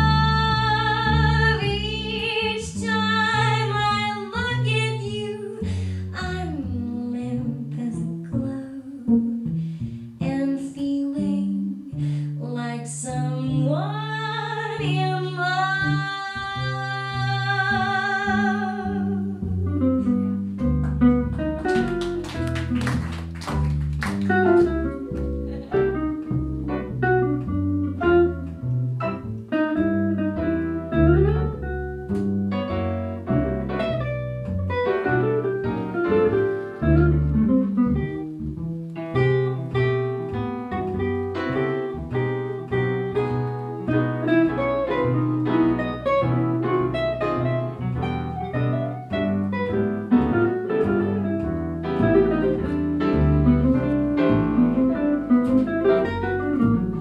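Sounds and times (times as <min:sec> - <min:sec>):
walking double bass: 0:00.0 - 0:57.0
piano chords: 0:13.4 - 0:57.0.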